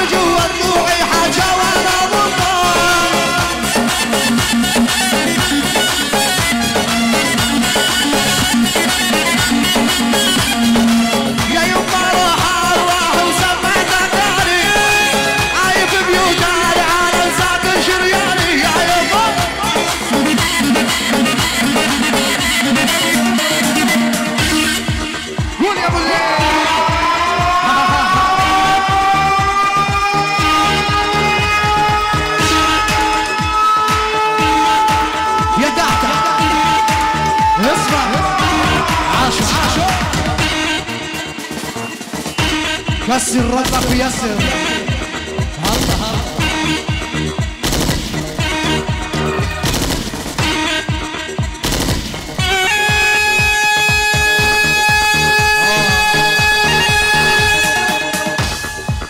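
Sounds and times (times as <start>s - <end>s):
cane flute melody: 0.0s - 43.1s, 52.4s - 59.0s
electronic bass-drum beat: 0.0s - 59.0s
folk wind pipe long note: 26.2s - 38.9s, 52.4s - 59.0s.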